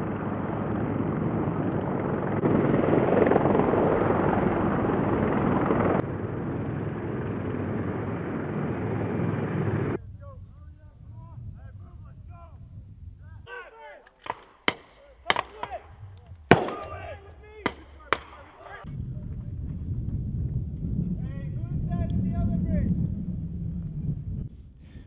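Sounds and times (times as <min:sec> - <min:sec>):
steady low rumble: 0:00.0 - 0:13.5, 0:14.2 - 0:25.0
gunshots: 0:13.5 - 0:18.9.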